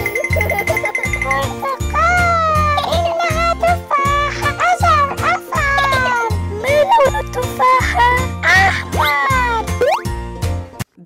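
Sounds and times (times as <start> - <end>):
playful children's music: 0.0 - 10.8.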